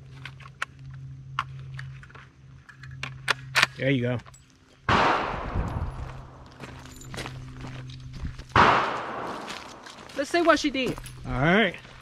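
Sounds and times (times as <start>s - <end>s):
rifle shots echoing: 4.9s - 6.6s, 8.5s - 10.3s.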